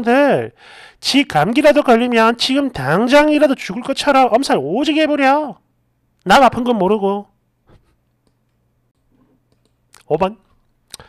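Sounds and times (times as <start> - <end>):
soft clicks: 8.2 - 11.0.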